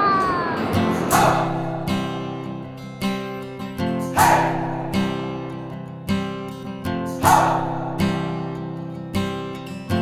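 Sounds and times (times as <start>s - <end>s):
rushing noise: 0.0s - 3.6s
acoustic guitar music: 0.0s - 10.0s.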